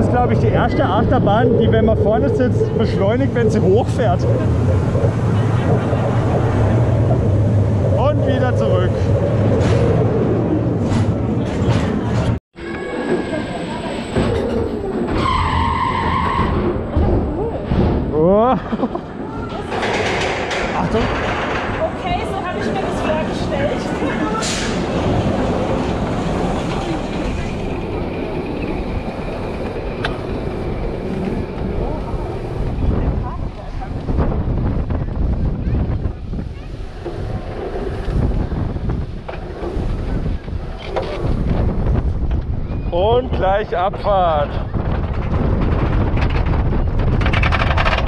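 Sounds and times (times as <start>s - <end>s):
roller coaster lift rattling: 0.0s - 48.0s.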